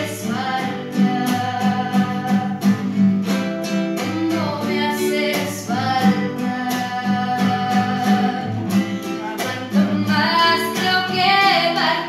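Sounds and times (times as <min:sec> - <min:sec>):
girl singing slow ballad: 0:00.0 - 0:02.9, 0:03.9 - 0:12.0
acoustic guitar: 0:00.0 - 0:12.0.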